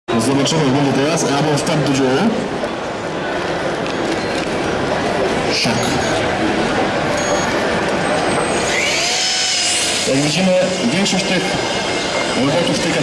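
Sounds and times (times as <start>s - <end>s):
crowd chatter: 0.1s - 13.0s
electric motors whining: 8.2s - 13.0s.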